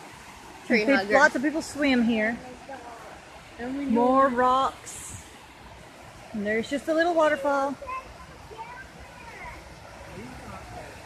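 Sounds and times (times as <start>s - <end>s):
small waterfall rushing: 0.0s - 11.0s.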